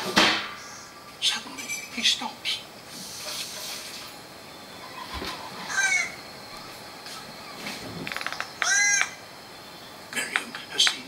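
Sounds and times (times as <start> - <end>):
bird call rising and falling: 4.4 - 10.1
rattle of bird clicks: 8.0 - 9.2.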